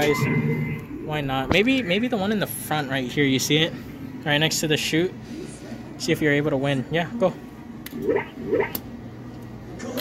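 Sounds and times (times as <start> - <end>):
machines humming: 0.0 - 10.0.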